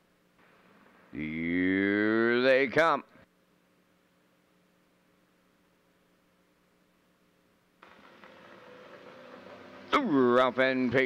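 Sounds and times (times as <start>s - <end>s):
faint steady hum: 0.0s - 11.0s
low steady background noise: 0.0s - 11.0s.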